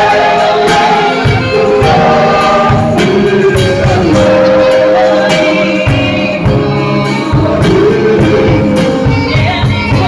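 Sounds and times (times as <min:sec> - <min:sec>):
band playing: 0:00.0 - 0:10.0
choir backing voices: 0:00.0 - 0:10.0
man singing lead: 0:00.0 - 0:10.0
steady drum beat: 0:00.0 - 0:10.0.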